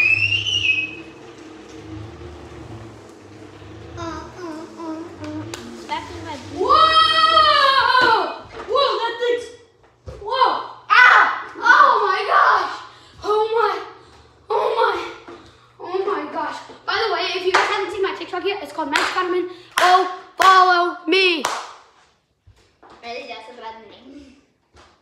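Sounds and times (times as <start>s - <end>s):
children shouting and laughing: 3.9s - 9.4s, 10.2s - 17.3s
wordless yell sliding in pitch: 6.5s - 8.4s.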